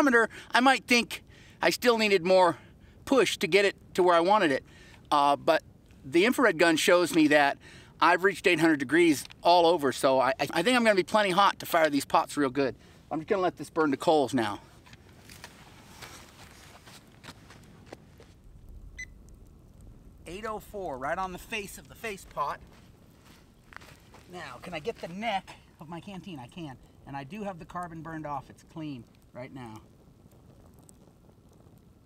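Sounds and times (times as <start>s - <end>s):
footsteps on sandy ground: 15.2s - 18.4s, 22.0s - 25.6s
thermometer gun beep: 19.0s - 19.2s
faint ticks: 27.7s - 32.0s.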